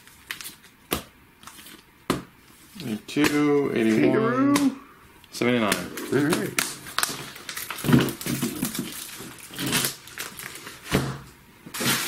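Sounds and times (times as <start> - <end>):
plastic bags crackling: 5.4 - 10.9.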